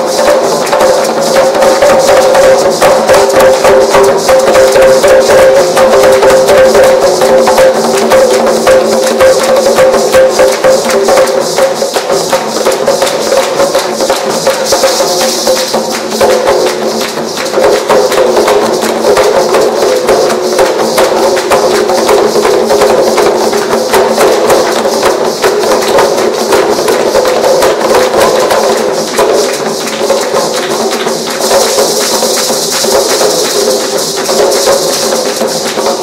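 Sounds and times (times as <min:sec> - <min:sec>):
hand drums in fast rhythm: 0:00.0 - 0:36.0
maracas rattling: 0:00.0 - 0:36.0.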